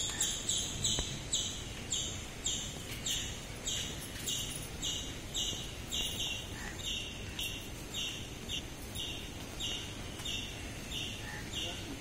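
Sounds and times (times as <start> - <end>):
low steady background noise: 0.0 - 12.0.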